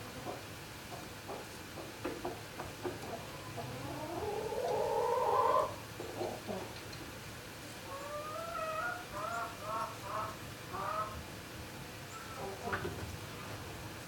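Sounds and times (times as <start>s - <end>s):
poultry calling: 3.1s - 6.6s, 7.9s - 11.2s.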